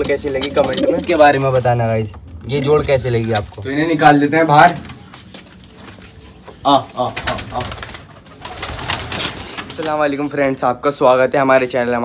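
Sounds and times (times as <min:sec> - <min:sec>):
pigeon wings flapping: 0:07.1 - 0:10.0.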